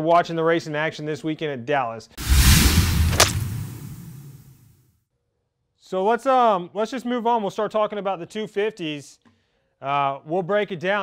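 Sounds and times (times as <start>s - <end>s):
sharp crack: 2.2s - 4.6s
whoosh with deep rumble: 2.2s - 4.6s.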